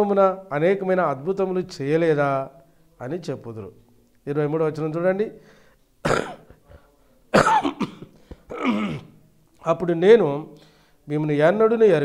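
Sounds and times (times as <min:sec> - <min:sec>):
man coughing: 0:06.0 - 0:09.2.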